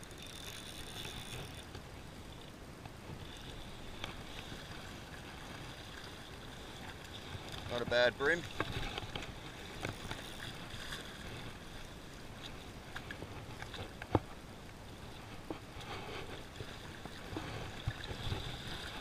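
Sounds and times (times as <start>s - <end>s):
small waves lapping on rocks: 0.0s - 19.0s.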